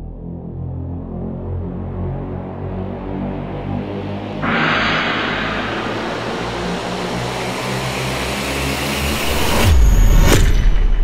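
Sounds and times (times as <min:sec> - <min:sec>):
deep boom: 0:04.4 - 0:07.8
rising whoosh: 0:04.4 - 0:07.8
sharp hit: 0:04.4 - 0:08.2
low musical drone: 0:04.4 - 0:08.4.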